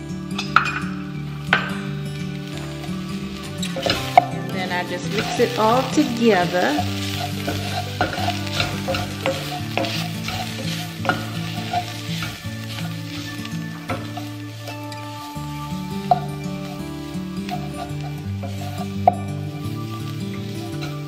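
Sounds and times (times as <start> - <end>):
onions sizzling in oil: 0.0 - 21.0
spatula scraping pot: 2.5 - 21.0.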